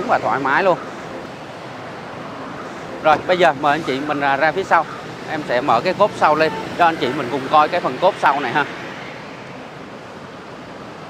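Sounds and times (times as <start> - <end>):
traffic noise hiss: 0.0 - 11.0.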